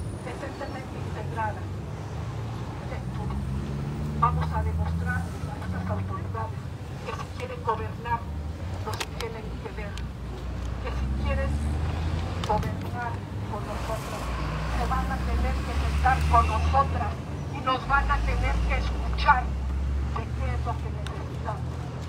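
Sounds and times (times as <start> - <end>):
woman speaking through megaphone: 0.0 - 1.9, 2.7 - 22.0.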